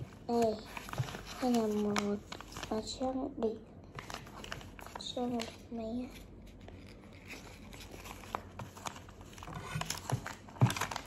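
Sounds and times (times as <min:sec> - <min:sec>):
paper rustling and crinkling: 0:00.0 - 0:03.1, 0:03.9 - 0:11.0.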